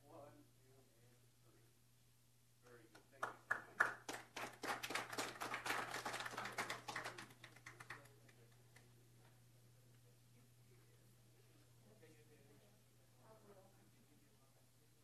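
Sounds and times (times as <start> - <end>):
small group applauding: 2.6 - 9.1.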